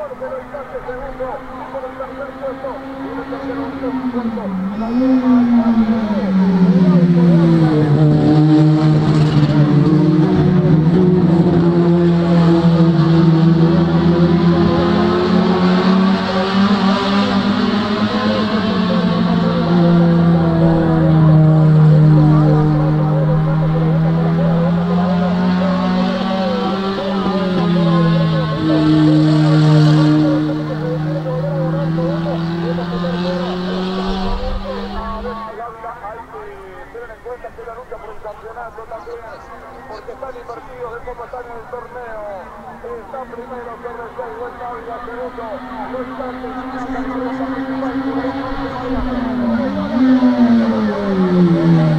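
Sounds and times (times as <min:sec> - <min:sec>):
race car engines revving: 0:00.0 - 0:51.9.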